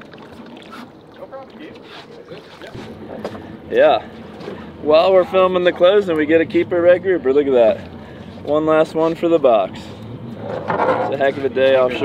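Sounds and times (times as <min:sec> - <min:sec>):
water noise: 0:00.0 - 0:12.0
wind: 0:00.0 - 0:12.0.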